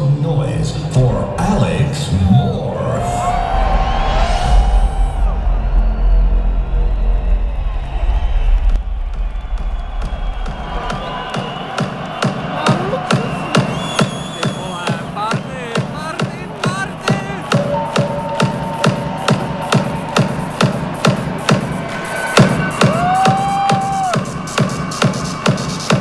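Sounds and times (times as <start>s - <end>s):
deep electronic rumble: 0.4s - 11.3s
crowd cheering and whooping: 1.7s - 26.0s
pulsing electronic beat: 3.5s - 26.0s.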